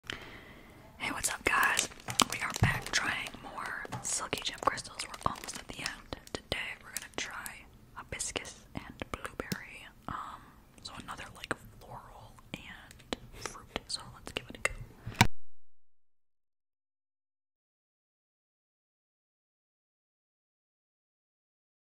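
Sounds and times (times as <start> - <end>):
close-up whispering: 0.8 - 14.9
plastic bag crinkling: 1.1 - 7.6.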